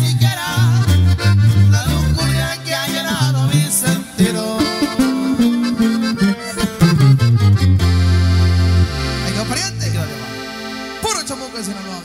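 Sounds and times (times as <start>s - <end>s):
accordion: 0.0s - 12.0s
guitar: 0.0s - 12.0s
sousaphone low notes: 4.2s - 10.7s.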